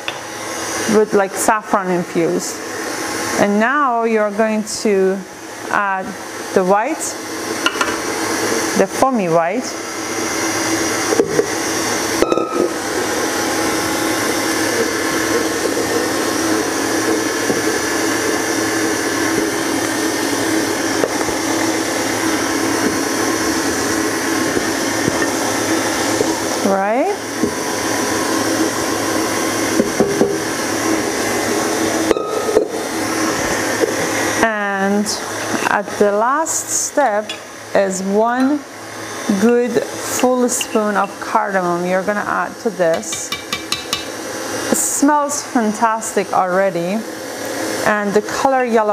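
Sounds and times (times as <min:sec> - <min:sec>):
electric stand mixer running: 0:00.0 - 0:48.9.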